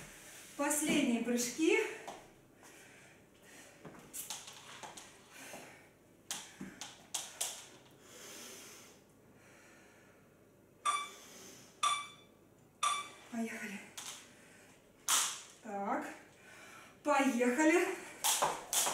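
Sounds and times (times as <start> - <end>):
interval timer beeps: 10.8 - 11.2, 11.8 - 13.2.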